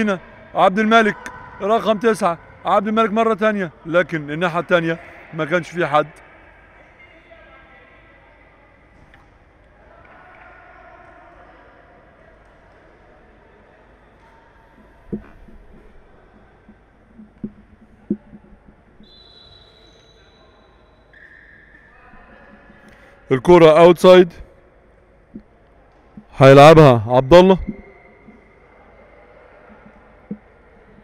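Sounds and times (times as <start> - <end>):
murmur of distant voices: 0.0 - 31.0.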